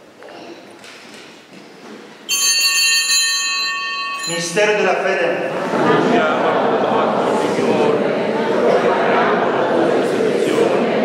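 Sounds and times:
altar bell ringing: 2.3 - 5.5.

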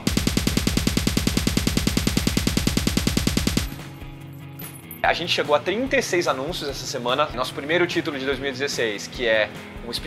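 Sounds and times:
rapid pulsing sound effect: 0.0 - 3.8.

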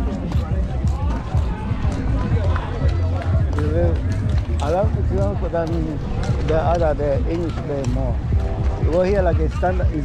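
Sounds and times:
footsteps: 0.0 - 10.0
people talking: 0.0 - 10.0.

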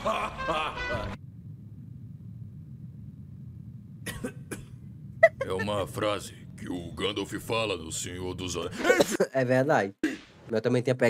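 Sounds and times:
low quiet hum: 0.0 - 9.2
man breathy chuckle: 5.2 - 5.7.

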